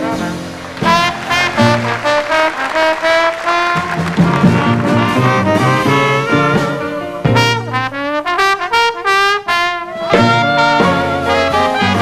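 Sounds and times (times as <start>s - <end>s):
brass horn solo: 0.0s - 12.0s.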